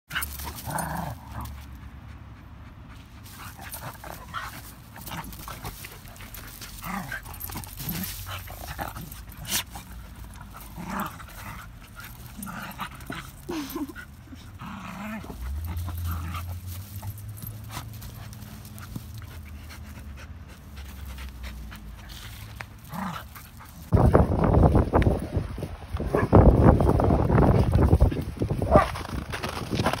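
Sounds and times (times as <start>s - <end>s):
dogs panting: 0.1s - 14.6s, 15.2s - 24.0s
paws crunching on snow: 3.2s - 13.7s, 20.6s - 30.0s
scuffling on wood chips: 3.2s - 13.9s, 20.6s - 30.0s.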